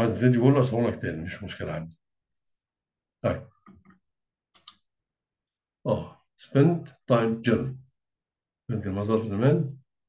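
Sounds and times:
mouse clicks: 4.6s - 4.8s.

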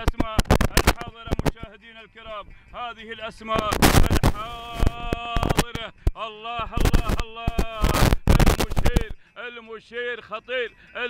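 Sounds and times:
microphone crackling: 0.0s - 1.7s, 3.5s - 9.2s
man calling out: 0.0s - 9.2s.

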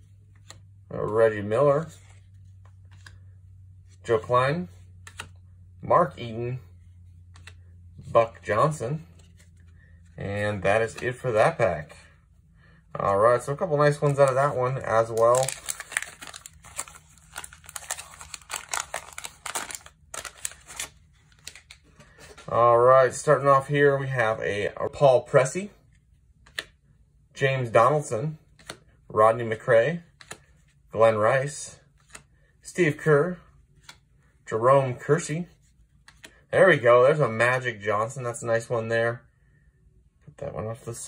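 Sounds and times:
trading cards handled: 0.0s - 1.2s, 1.8s - 5.6s, 6.2s - 12.2s, 13.1s - 22.6s, 25.8s - 26.8s, 28.4s - 32.4s, 33.0s - 34.2s, 35.0s - 36.5s
low steady hum: 0.0s - 41.0s
wax paper wrapper tearing and crinkling: 13.9s - 21.8s.

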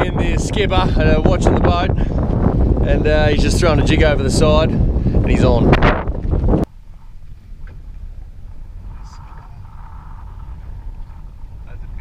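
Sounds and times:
boat engine low rumble: 0.0s - 12.0s.

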